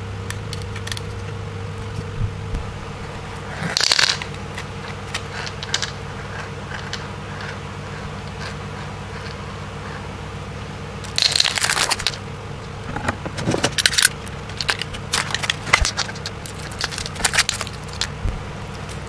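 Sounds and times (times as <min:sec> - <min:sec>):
steady low hum: 0:00.0 - 0:19.0
aluminium foil crinkling: 0:11.1 - 0:12.2, 0:13.7 - 0:19.0
dried glue crackling: 0:14.1 - 0:19.0.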